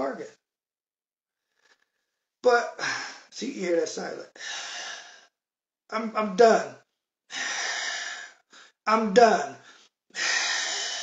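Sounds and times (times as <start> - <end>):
man speaking: 0.0 - 0.4, 2.4 - 4.3, 5.9 - 6.8, 8.9 - 9.6
man breathing noisily: 4.4 - 5.4, 7.3 - 8.8, 9.6 - 11.0.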